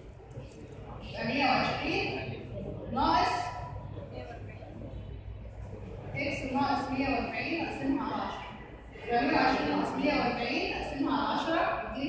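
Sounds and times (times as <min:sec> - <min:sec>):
woman lecturing: 0:01.0 - 0:02.3, 0:02.9 - 0:04.4, 0:06.2 - 0:12.0.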